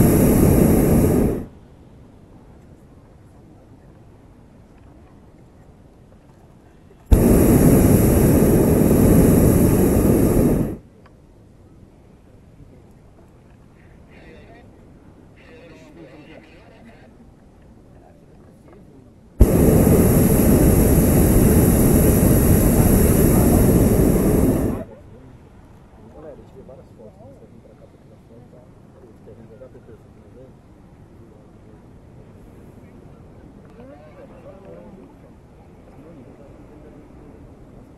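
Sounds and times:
propane burner blasting: 0.0s - 1.5s, 7.1s - 10.8s, 19.4s - 24.9s.

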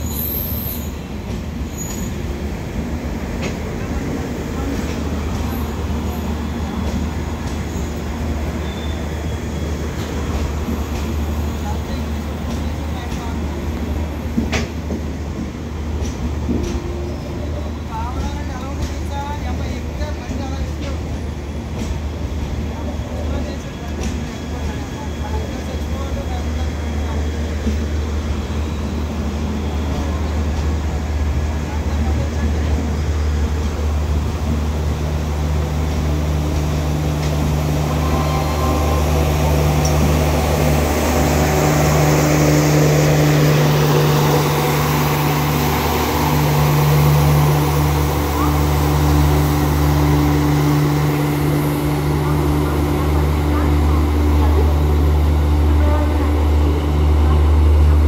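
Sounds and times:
train coaches rumbling past: 0.0s - 58.0s.

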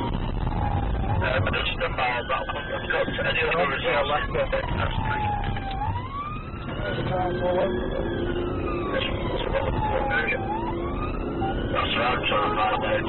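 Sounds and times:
engine and road noise: 0.0s - 13.0s
police siren wailing: 0.0s - 13.0s.

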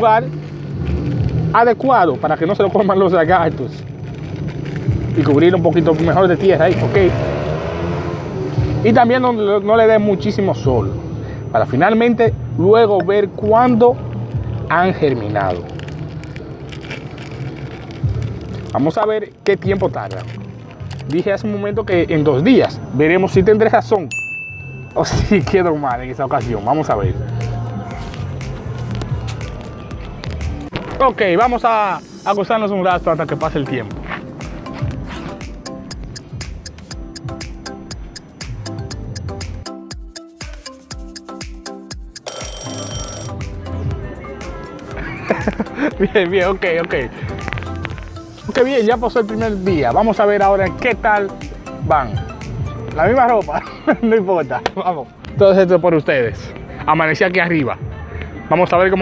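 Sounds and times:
plastic cover crackling: 0.0s - 1.6s, 3.4s - 6.9s, 15.2s - 21.2s
background music with steady beat: 4.8s - 15.8s, 17.3s - 59.0s
steady low hum: 8.0s - 15.6s
alarm clock ringing: 42.2s - 43.3s
man's voice: 45.1s - 47.3s, 53.0s - 57.9s.

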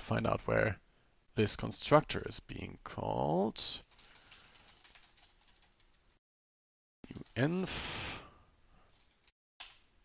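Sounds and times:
faint keyboard typing: 3.8s - 6.2s, 7.0s - 7.5s, 8.8s - 9.8s.

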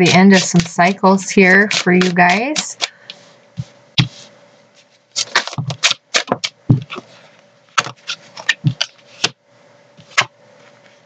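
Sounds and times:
cards being shuffled: 0.0s - 7.2s, 7.8s - 9.4s, 10.0s - 10.3s.

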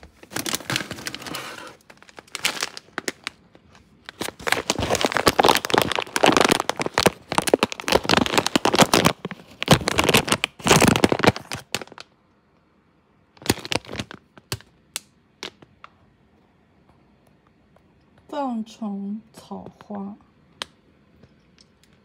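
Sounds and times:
plastic bag crinkling: 0.0s - 12.2s, 13.3s - 14.8s.

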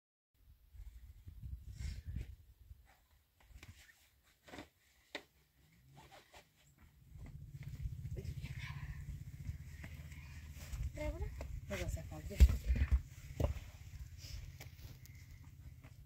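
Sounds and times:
steady low rumble: 7.0s - 16.0s
stones and earth handled by hand: 9.6s - 16.0s.

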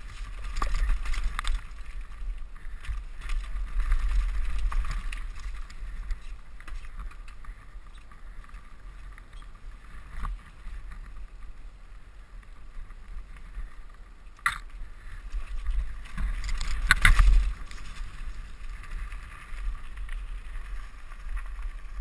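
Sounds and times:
bike clattering over bumps: 0.0s - 11.6s, 12.5s - 22.0s
bike rattling: 0.0s - 22.0s
bike tyres on dirt: 0.0s - 22.0s.

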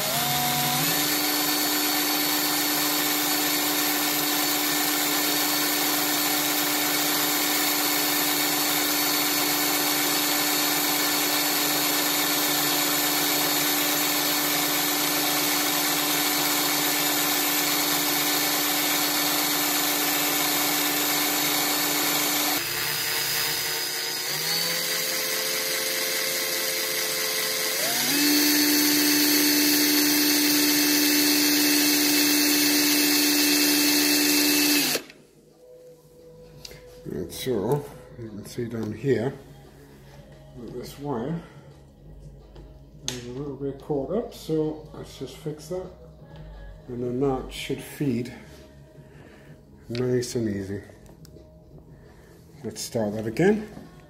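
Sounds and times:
cordless drill motor whining: 0.0s - 35.2s.

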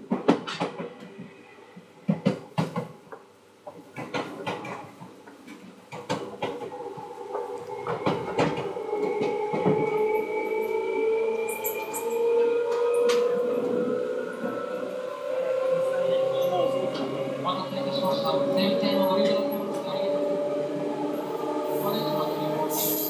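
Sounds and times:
train knocks and clanks: 0.0s - 10.7s, 11.5s - 14.8s.

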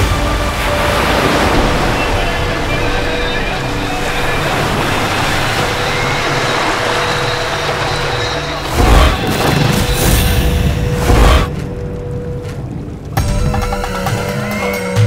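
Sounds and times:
dramatic background score: 0.0s - 15.0s.

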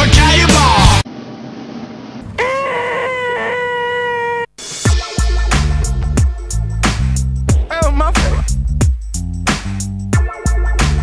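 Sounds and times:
cartoon wrestler yelling: 2.4s - 4.5s.

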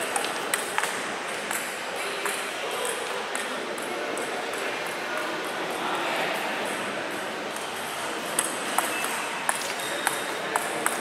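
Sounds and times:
table tennis ball clicking: 7.5s - 11.0s.

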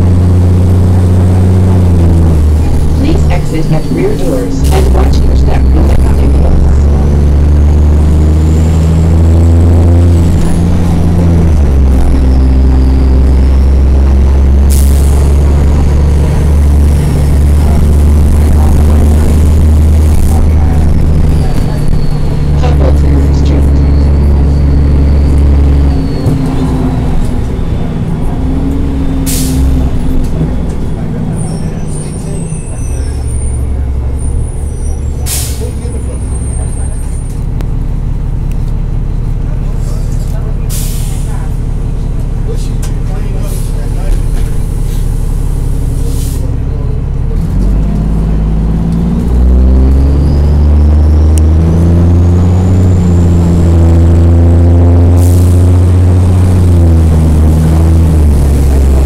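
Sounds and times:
bus diesel engine: 0.0s - 59.0s.

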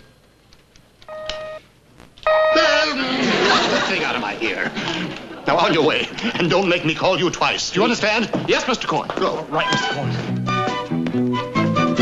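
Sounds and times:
pager beeps: 1.1s - 1.6s.

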